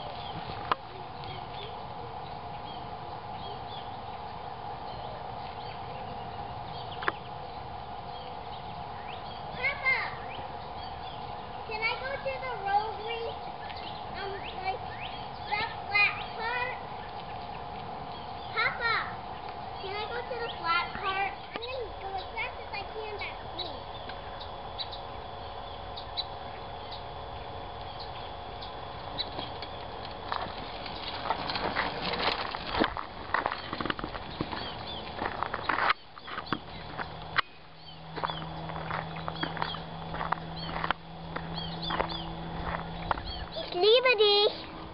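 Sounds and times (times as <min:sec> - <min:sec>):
low hum: 0:00.0 - 0:44.9
small birds chirping: 0:00.0 - 0:44.9.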